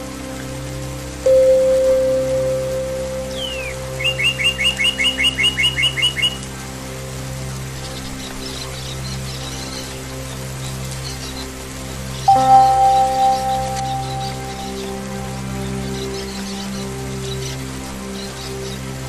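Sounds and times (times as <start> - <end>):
calm ambient music: 0.0 - 19.0
songbird singing: 0.6 - 6.5, 7.7 - 19.0.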